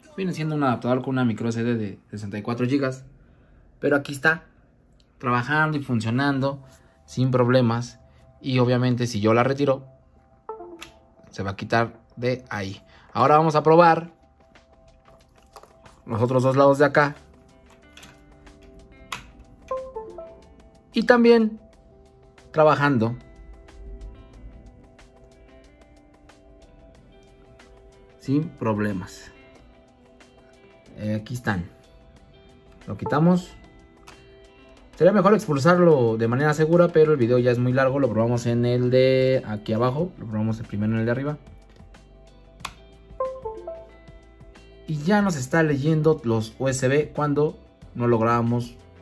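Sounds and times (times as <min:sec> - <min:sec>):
faint background music: 0:00.0 - 0:49.0
two-note device-connect chime: 0:10.5 - 0:11.0, 0:19.7 - 0:20.4, 0:43.2 - 0:44.0
usb adapter clicking into port: 0:42.6 - 0:42.9.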